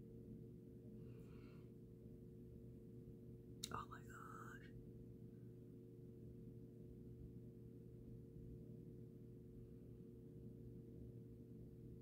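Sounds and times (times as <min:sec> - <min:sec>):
faint steady hum: 0:00.0 - 0:12.0
woman whispering: 0:03.6 - 0:04.7.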